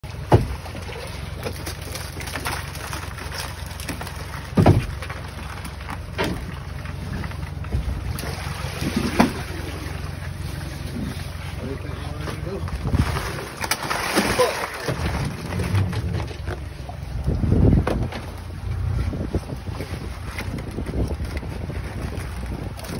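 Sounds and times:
boat engine idling: 0.0 - 22.9
wind buffeting microphone: 15.0 - 22.9.

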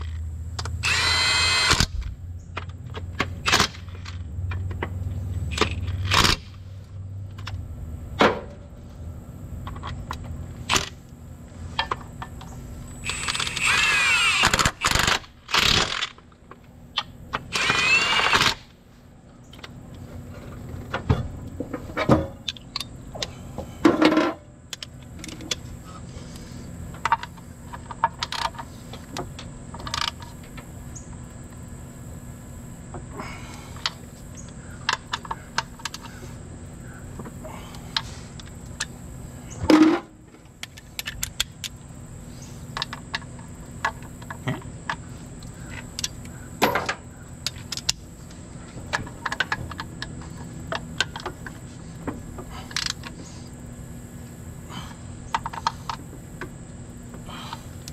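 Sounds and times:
impact wrench bursts: 0.8 - 2.0, 13.0 - 16.2, 17.5 - 18.7
hand ratchet clicks and clinks: 13.0 - 16.2.

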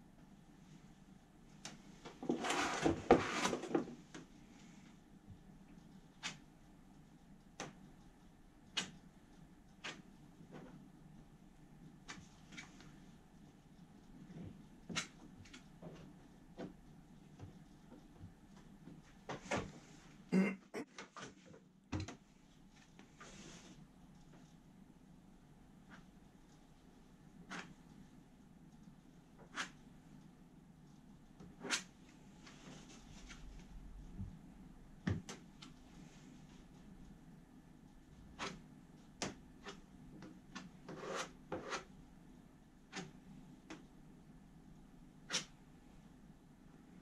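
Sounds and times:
plastic spreader scraping filler: 2.2 - 3.9.

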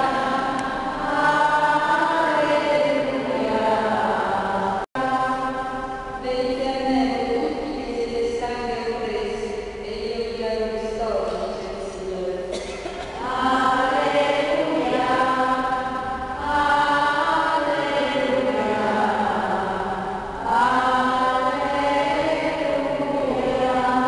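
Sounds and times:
voices singing slow chant: 0.0 - 7.6, 12.5 - 24.0.

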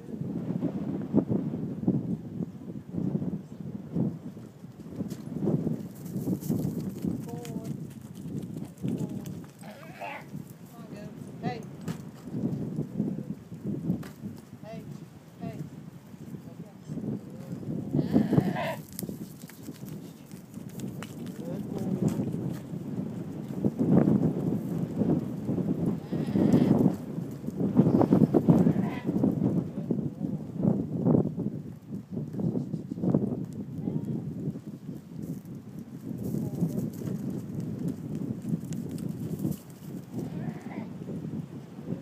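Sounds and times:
hoof and paw steps on dirt: 4.7 - 10.7, 18.4 - 22.8, 34.9 - 40.8
goats bleating: 9.6 - 10.3, 18.0 - 18.8, 26.0 - 26.8
rustle of movement: 17.2 - 22.8.

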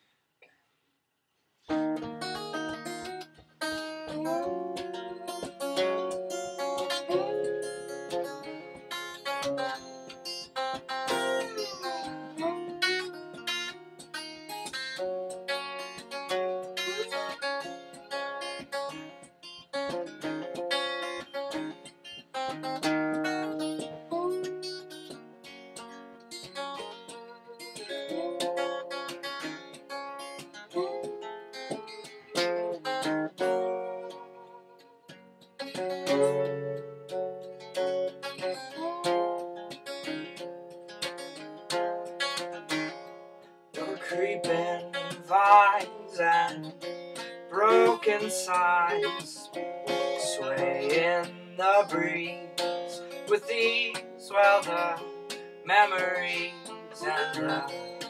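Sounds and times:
acoustic guitar picking and strumming: 1.7 - 58.0.

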